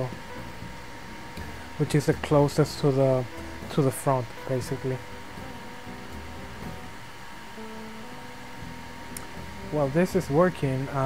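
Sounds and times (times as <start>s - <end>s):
lower motor tone: 0.0s - 11.0s.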